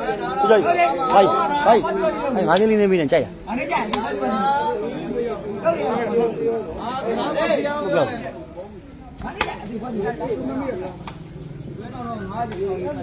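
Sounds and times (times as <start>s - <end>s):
men's voices talking: 0.0s - 13.0s
sharp smack: 9.2s - 9.7s.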